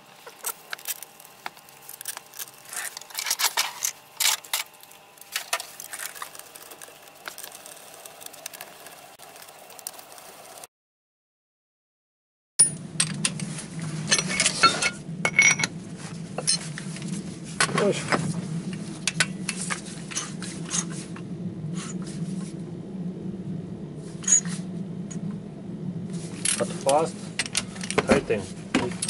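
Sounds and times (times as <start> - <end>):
low hum: 12.6 - 29.0.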